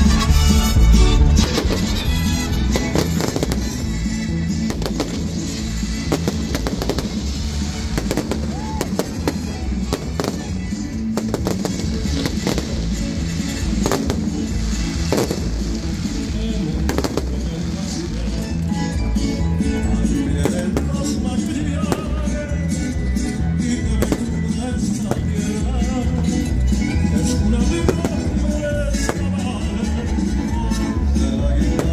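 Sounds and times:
fireworks bangs and crackles: 0.0s - 18.6s, 20.1s - 31.9s
loud music with steady bass: 0.0s - 31.9s.

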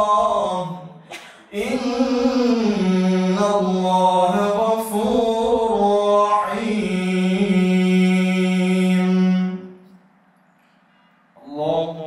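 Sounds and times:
man chanting recitation: 0.0s - 9.8s, 11.4s - 12.0s.

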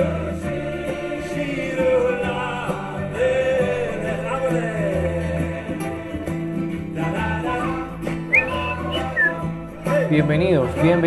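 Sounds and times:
background music: 0.0s - 11.0s
person whistling: 7.5s - 9.6s.

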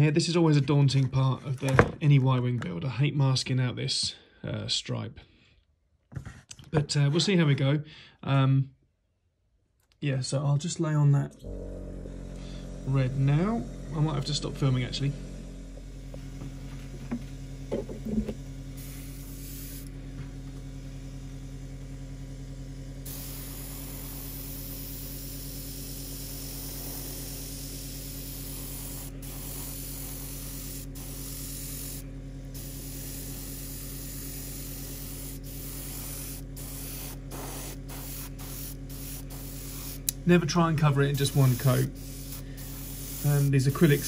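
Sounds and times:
air compressor humming: 11.3s - 44.0s
airbrush spraying hiss: 15.5s - 20.1s, 23.0s - 40.3s, 40.9s - 44.0s.

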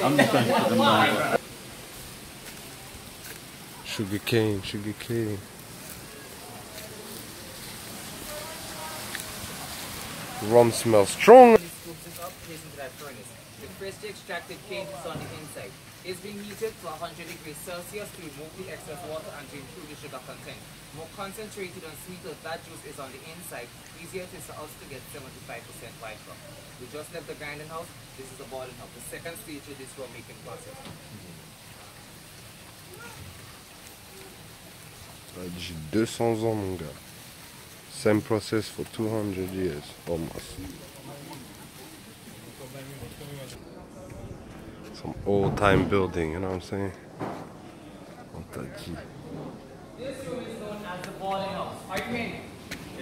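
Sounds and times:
faint distant voices: 0.0s - 53.0s
steady outdoor hiss: 0.0s - 53.0s.

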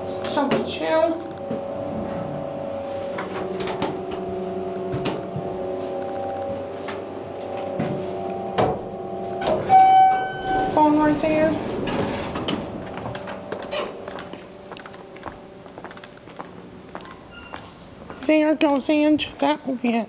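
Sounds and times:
elevator humming: 0.0s - 19.2s
electronic chime: 0.8s - 16.1s.

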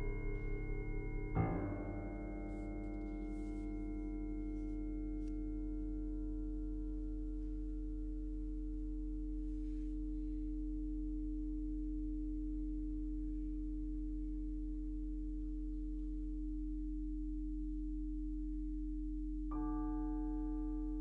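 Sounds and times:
deep steady hum: 0.0s - 21.0s
higher sine tone: 0.0s - 21.0s
low pure sine tone: 0.0s - 21.0s.

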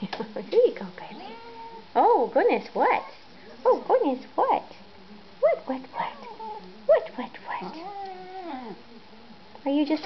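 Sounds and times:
cat mewing and grumbling: 7.6s - 8.8s.

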